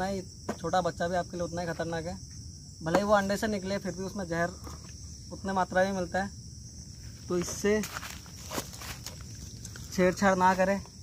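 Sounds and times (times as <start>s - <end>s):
crickets chirring: 0.0s - 11.0s
dry leaves crackling underfoot: 7.1s - 10.8s.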